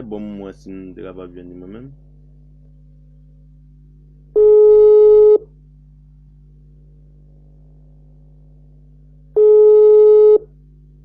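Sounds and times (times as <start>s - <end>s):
steady low hum: 0.0s - 11.0s
telephone line tone: 4.4s - 5.4s, 9.4s - 10.5s.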